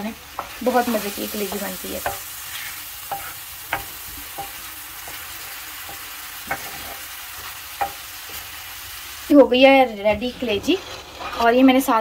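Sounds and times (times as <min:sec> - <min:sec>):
food sizzling in a pan: 0:00.0 - 0:12.0
wooden spatula knocking pan: 0:00.4 - 0:02.3, 0:03.1 - 0:05.2, 0:05.8 - 0:07.1, 0:07.8 - 0:08.4.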